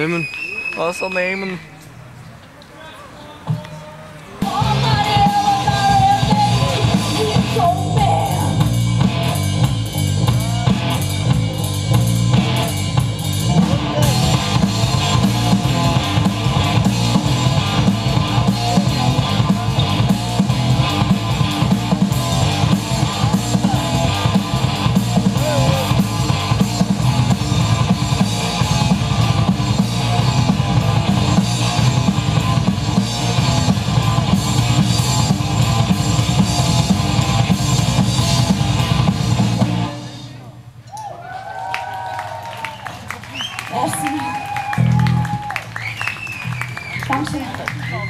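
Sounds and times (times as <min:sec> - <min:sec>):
loud drum kit: 0:04.4 - 0:40.4
rock band playing: 0:04.4 - 0:40.6, 0:44.5 - 0:48.0.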